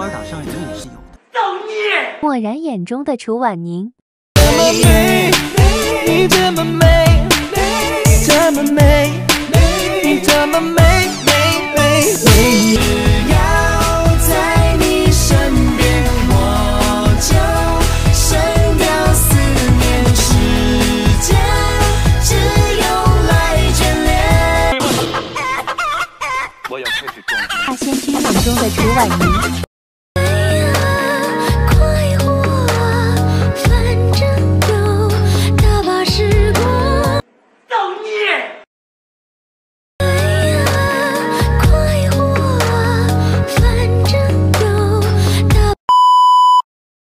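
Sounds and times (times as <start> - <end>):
background music: 0.0 - 1.4, 4.4 - 25.6, 30.2 - 37.2, 40.0 - 45.8
electronic censor bleep: 45.9 - 46.7.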